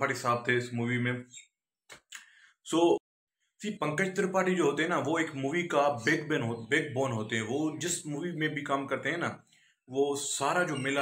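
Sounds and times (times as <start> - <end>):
man speaking: 0.0 - 1.4, 2.7 - 3.0, 3.6 - 11.0.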